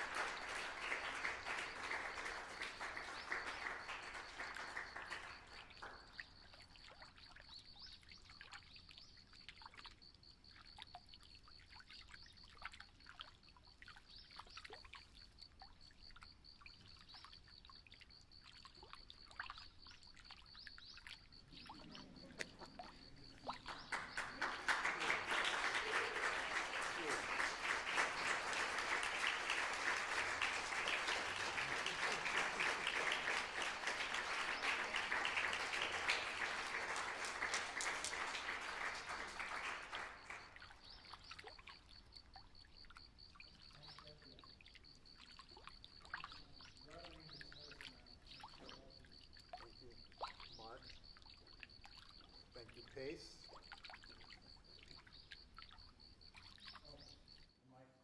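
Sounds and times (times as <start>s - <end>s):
audience applause: 0.0s - 6.2s, 21.7s - 40.6s.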